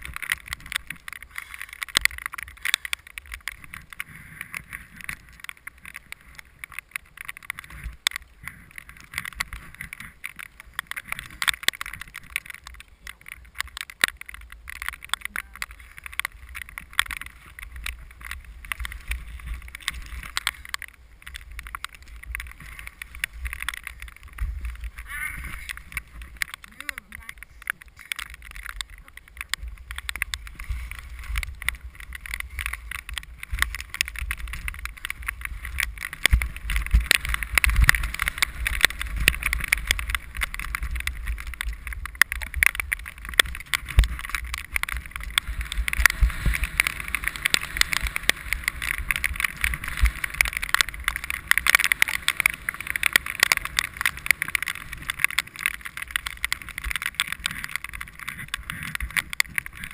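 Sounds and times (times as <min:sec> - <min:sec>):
skis scraping over snow: 0:00.0 - 0:59.9
small clicks: 0:00.0 - 0:59.9.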